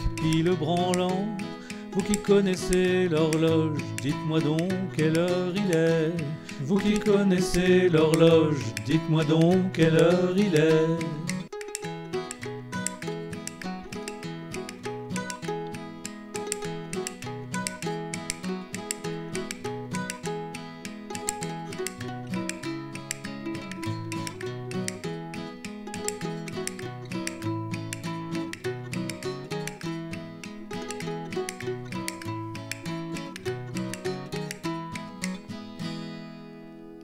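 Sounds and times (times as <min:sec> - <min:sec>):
acoustic guitar strumming: 0:00.0 - 0:37.0
mandolin plucked notes: 0:00.0 - 0:37.0.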